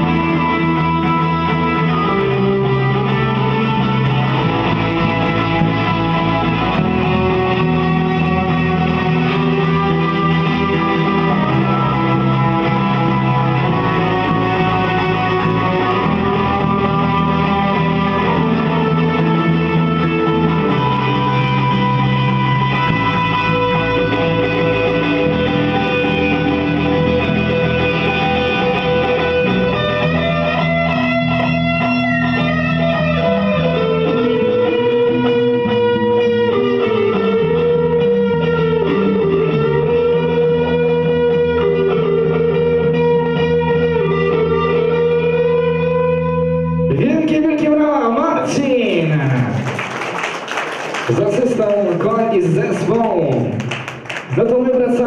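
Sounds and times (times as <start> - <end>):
electric bass line: 0.0 - 49.8
electric guitar chords: 0.0 - 55.0.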